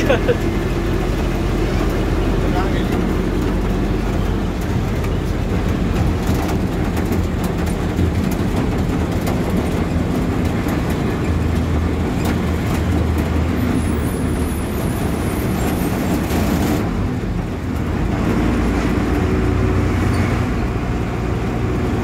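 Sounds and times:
cab rattles and knocks: 0:00.0 - 0:14.1
engine drone: 0:00.0 - 0:22.0
road noise: 0:00.0 - 0:22.0.

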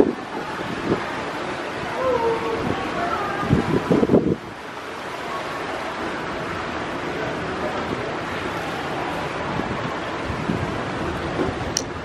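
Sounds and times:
fountain jets splashing water: 0:00.0 - 0:12.0
wind buffeting microphone: 0:00.0 - 0:12.0.

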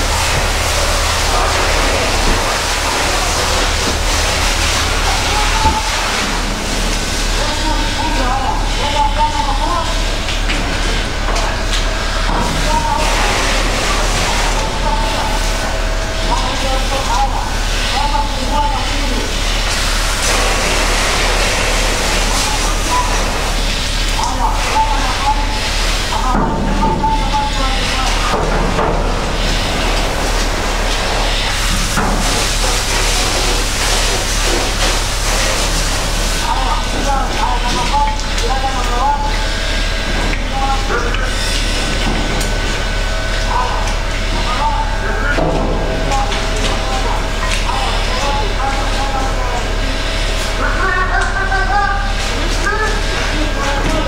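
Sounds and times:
muffled voices: 0:00.0 - 0:54.0
steady loud noise: 0:00.0 - 0:54.0.

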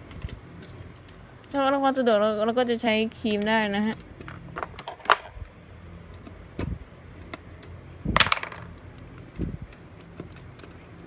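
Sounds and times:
plastic clatter: 0:03.3 - 0:05.4, 0:08.1 - 0:11.0.

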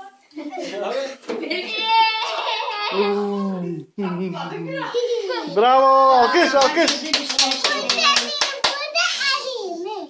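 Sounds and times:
people clapping hands: 0:06.3 - 0:09.2.

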